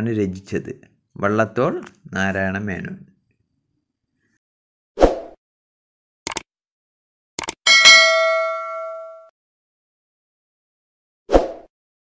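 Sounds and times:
notification bell chime: 7.7s - 9.3s.

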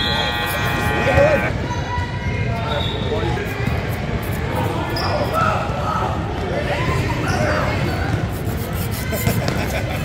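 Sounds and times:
voices in echoing gym: 0.0s - 10.0s.

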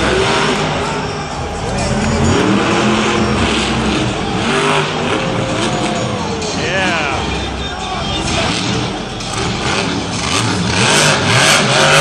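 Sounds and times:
public address noise: 0.0s - 4.8s, 5.7s - 9.5s
arena crowd: 0.0s - 12.0s
monster truck engine revving: 0.0s - 12.0s.

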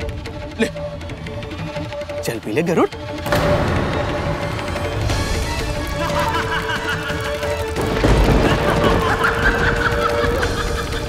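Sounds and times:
men laughing mockingly: 5.8s - 11.0s.

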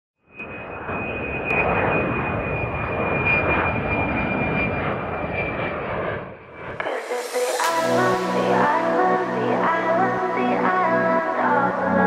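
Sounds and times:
jet airplane roar and whine: 0.2s - 12.0s.

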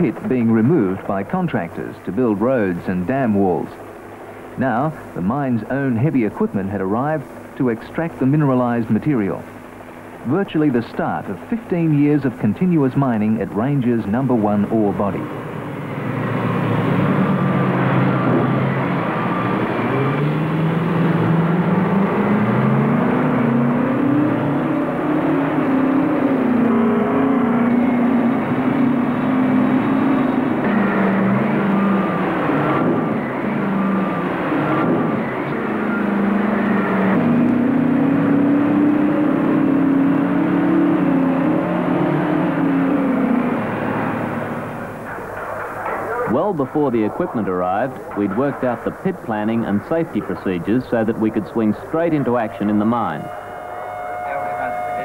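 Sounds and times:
heavy diesel engines working: 0.0s - 55.0s.

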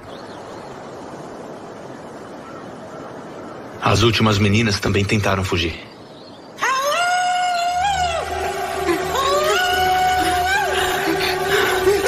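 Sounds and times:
woman screaming: 6.6s - 12.0s
low drone in film score: 6.9s - 12.0s.

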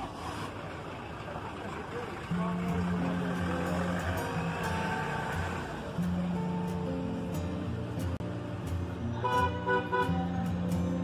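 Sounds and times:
traffic hum: 0.0s - 11.0s
faint voices of people talking: 0.5s - 11.0s.

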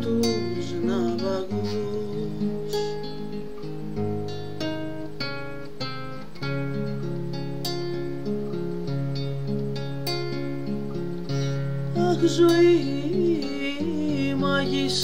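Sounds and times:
acoustic guitar chords: 0.0s - 15.0s.

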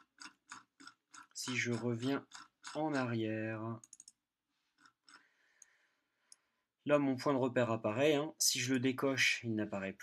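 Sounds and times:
computer mouse clicks: 3.8s - 4.2s.

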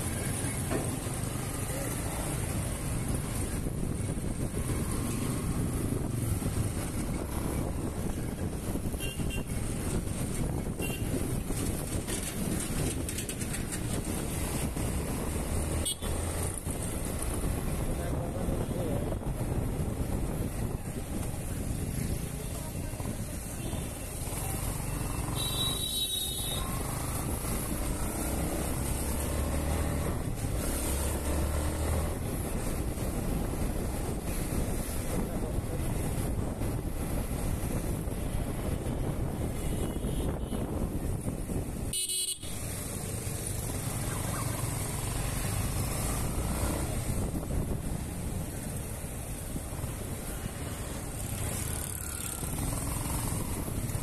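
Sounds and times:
wind noise on microphone: 2.8s - 24.0s, 26.6s - 44.2s, 45.0s - 54.0s.

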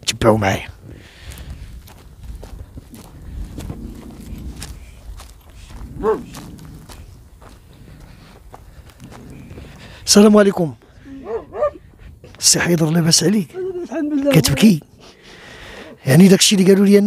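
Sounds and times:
footsteps on stony ground: 0.2s - 16.8s
low rumble: 1.4s - 12.4s.

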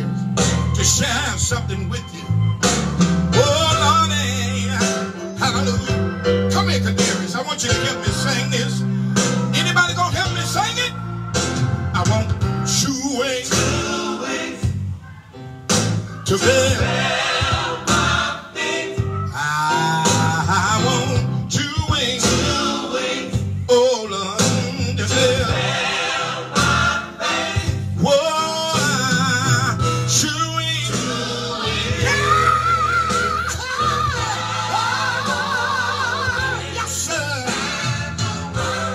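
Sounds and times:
gospel band playing: 0.0s - 38.9s
man singing: 0.6s - 2.4s, 3.4s - 8.9s, 12.0s - 14.0s, 16.2s - 17.0s, 19.3s - 23.0s, 23.6s - 25.7s, 28.0s - 35.4s, 36.3s - 37.7s.

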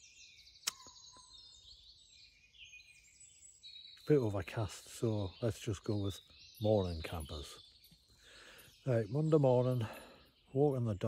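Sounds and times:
faint songbirds singing: 0.0s - 11.0s
sharp click: 0.6s - 1.0s.

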